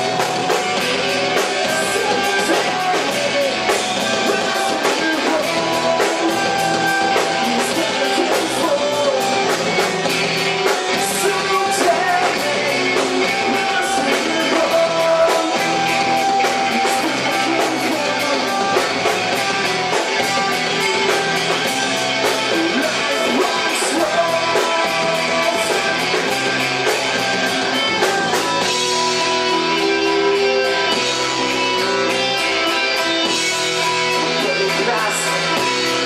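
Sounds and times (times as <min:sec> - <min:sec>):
drum kit: 0:00.0 - 0:36.0
electric guitars: 0:00.0 - 0:36.0.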